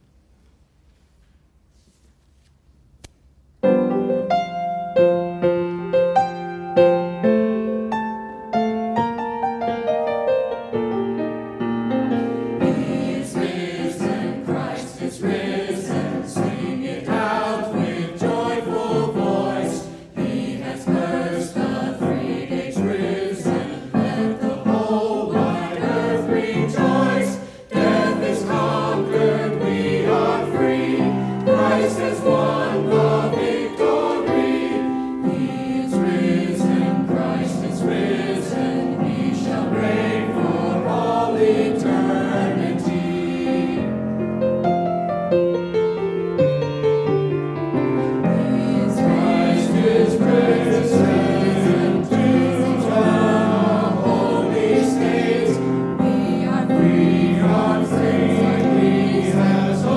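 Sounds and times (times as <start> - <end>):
mixed choir singing: 12.5 - 44.0, 48.1 - 59.9.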